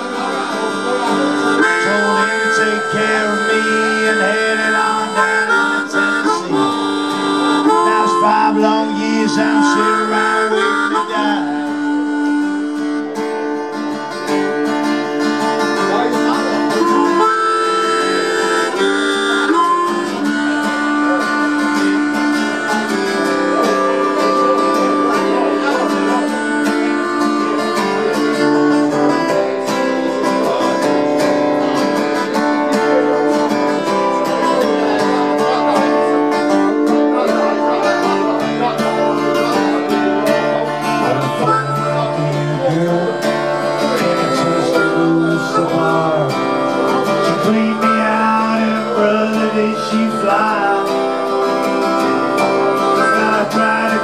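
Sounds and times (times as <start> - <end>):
harmonica solo: 0.0 - 54.0
strummed acoustic guitar: 0.0 - 54.0.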